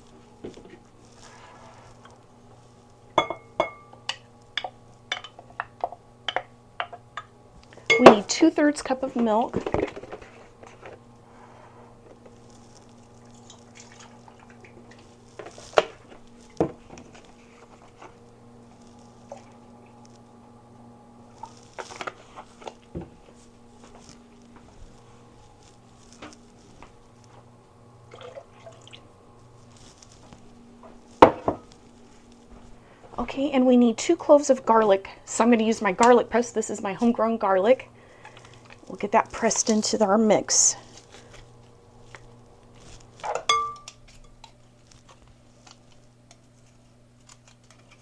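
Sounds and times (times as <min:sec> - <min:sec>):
steady low hum: 0:00.0 - 0:48.0
kitchen things knocking and clinking: 0:31.2 - 0:31.6.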